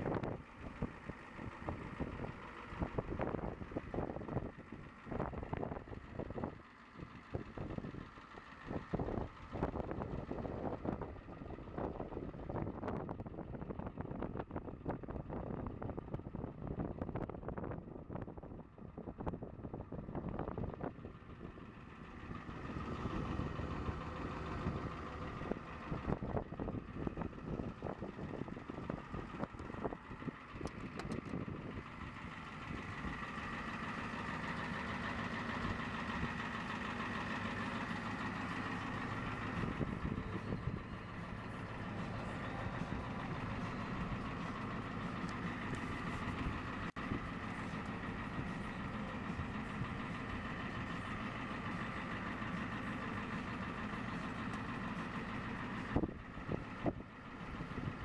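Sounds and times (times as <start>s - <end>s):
vehicle engine idling: 0.0s - 58.0s
wind buffeting microphone: 39.4s - 41.0s.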